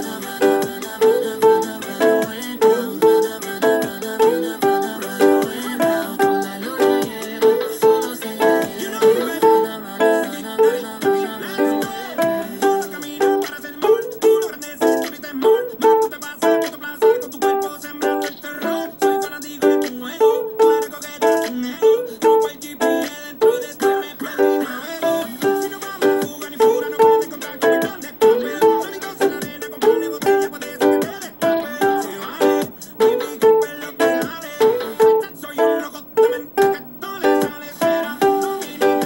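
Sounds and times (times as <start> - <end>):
ukulele strumming: 0.0 - 39.0.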